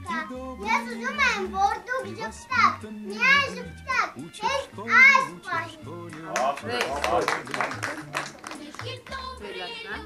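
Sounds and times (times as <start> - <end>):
background music with bass line: 0.0 - 10.0
girl speaking: 0.7 - 5.8.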